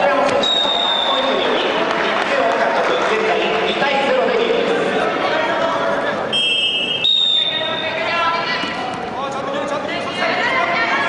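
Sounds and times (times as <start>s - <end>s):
referee's whistle blast: 0.3s - 1.3s, 6.3s - 7.9s.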